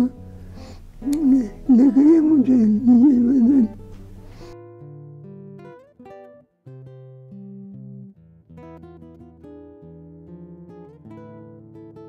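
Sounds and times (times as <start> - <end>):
acoustic guitar music: 0.0 - 12.0.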